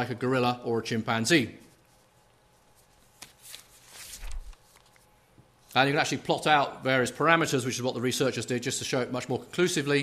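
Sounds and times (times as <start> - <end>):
brief rustling: 3.1 - 5.1.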